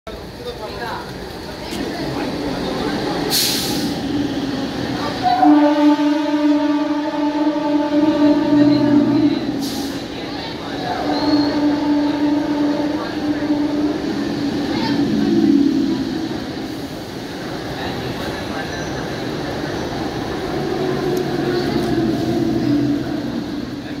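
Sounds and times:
train rumbling past on rails: 0.1s - 24.0s.

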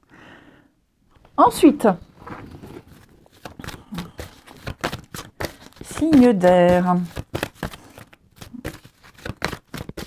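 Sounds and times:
cards being shuffled: 2.1s - 10.0s.

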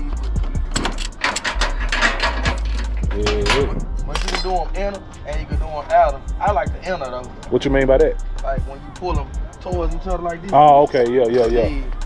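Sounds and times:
ratchet strap clicking: 0.2s - 4.6s.

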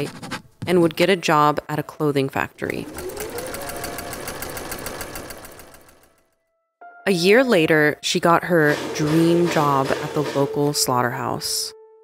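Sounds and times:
sewing machine running: 2.6s - 6.2s, 8.6s - 10.8s.

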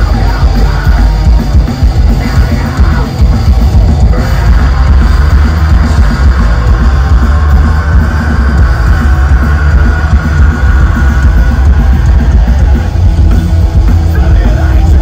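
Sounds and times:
bass guitar: 0.0s - 15.0s
distorted electric guitars: 0.0s - 15.0s
drums: 0.0s - 15.0s
punk rock band playing: 0.0s - 15.0s.

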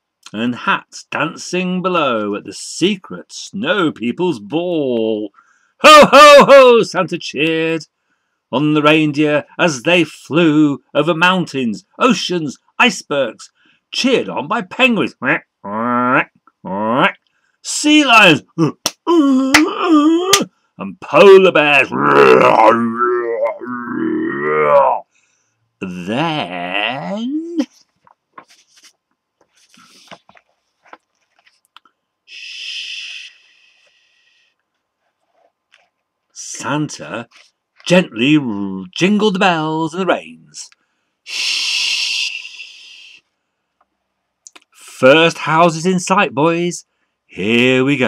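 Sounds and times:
man imitating bear roar: 15.6s - 17.0s, 18.6s - 20.5s, 21.2s - 25.1s
person hushing: 18.6s - 20.5s, 21.8s - 25.1s.

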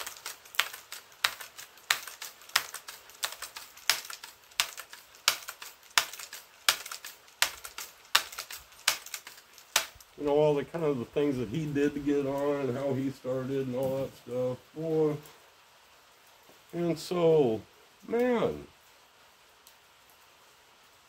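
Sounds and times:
water dripping on hard surface: 0.0s - 15.4s.

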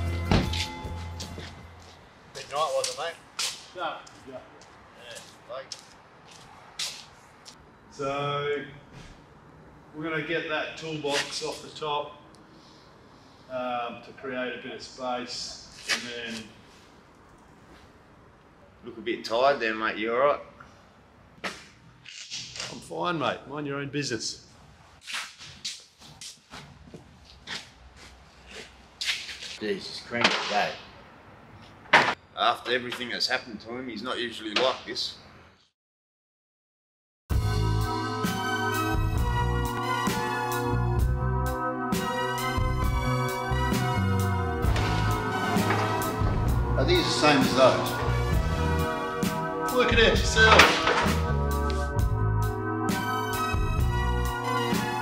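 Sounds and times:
footsteps scuffing on concrete: 0.2s - 7.6s, 25.0s - 29.6s.

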